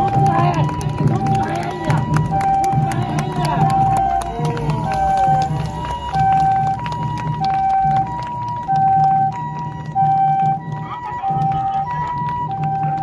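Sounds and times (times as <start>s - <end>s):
two-tone ambulance siren: 0.0s - 13.0s.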